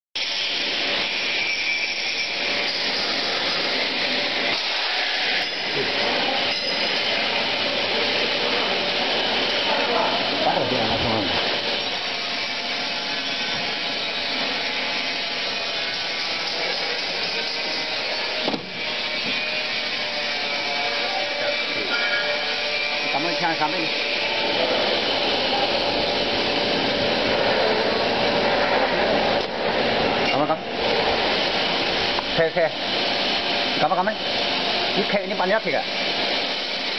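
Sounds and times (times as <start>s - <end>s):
factory machinery running: 0.2s - 36.9s.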